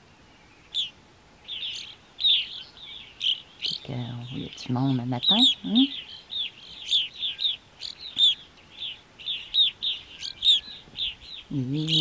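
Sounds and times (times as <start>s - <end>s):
birds calling downslurred notes: 0.0s - 12.0s.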